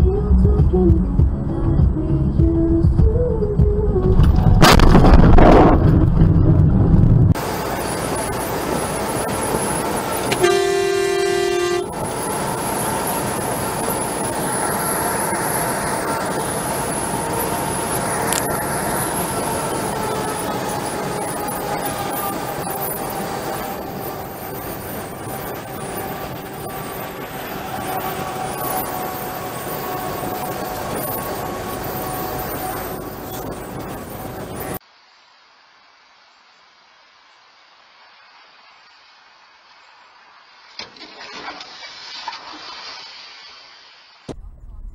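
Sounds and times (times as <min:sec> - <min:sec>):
loud low rumble: 0:00.0 - 0:08.6, 0:44.3 - 0:44.9
road and engine noise: 0:00.0 - 0:44.9
vehicle horn blast: 0:10.3 - 0:12.0.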